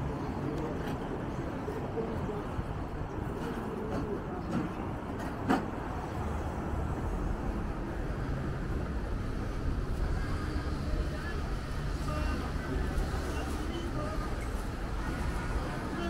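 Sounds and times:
low rumble of road traffic: 0.0 - 16.0.

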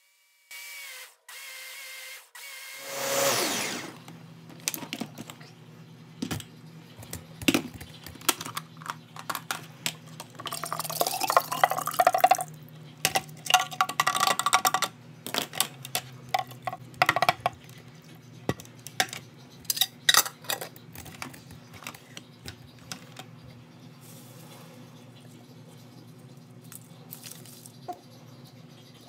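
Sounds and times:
thick liquid pouring: 10.5 - 12.5.

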